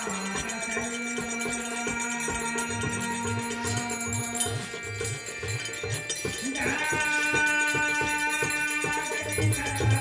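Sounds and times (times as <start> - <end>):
jingling percussion: 0.0 - 10.0.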